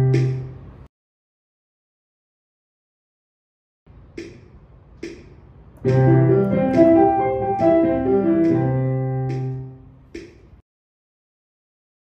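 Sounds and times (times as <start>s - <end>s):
metronome clicking: 5.8s - 9.6s
piano arpeggio: 5.8s - 9.7s.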